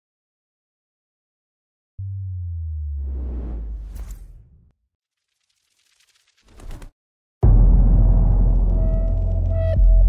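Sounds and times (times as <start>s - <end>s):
deep bass tone: 2.0s - 3.8s, 7.4s - 10.0s.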